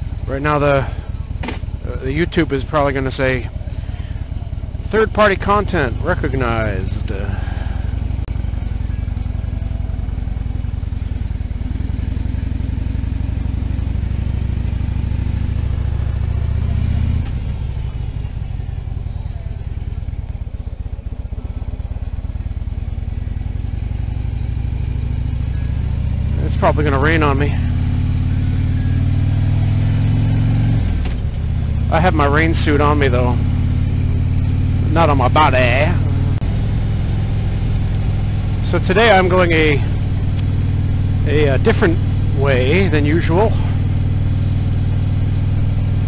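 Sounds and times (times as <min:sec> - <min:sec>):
motorcycle engine running: 0:00.0 - 0:46.0
wind and road noise: 0:00.0 - 0:46.0.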